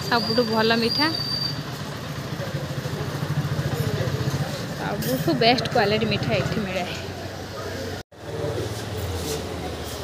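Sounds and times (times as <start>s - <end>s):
engine idling: 1.6s - 4.9s.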